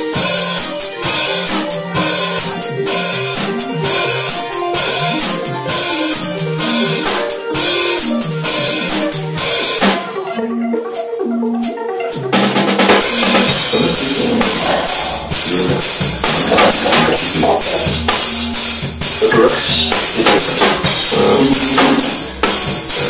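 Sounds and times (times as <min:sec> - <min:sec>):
drum beat: 0:00.0 - 0:10.2, 0:12.2 - 0:23.0
bass line: 0:00.0 - 0:23.0
repeating synth notes: 0:00.0 - 0:23.0.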